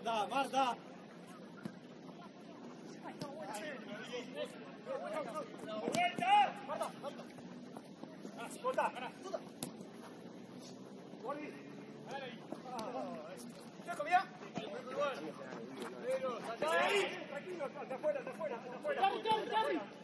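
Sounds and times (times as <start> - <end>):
distant players shouting: 3.0 - 7.5, 8.1 - 20.0.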